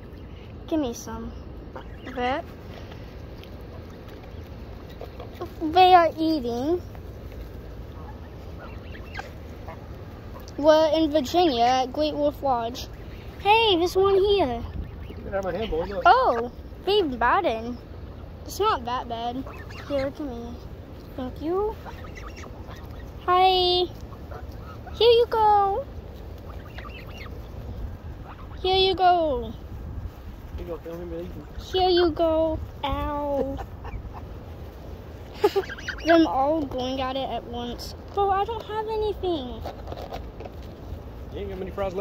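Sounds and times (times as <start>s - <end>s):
geese calling: 0.0s - 42.0s
steady low rumble: 0.0s - 42.0s.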